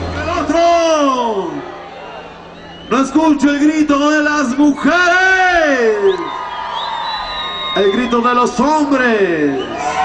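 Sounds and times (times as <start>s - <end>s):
crowd cheering: 0.0s - 10.0s
high whistle: 2.5s - 3.2s, 6.0s - 8.5s.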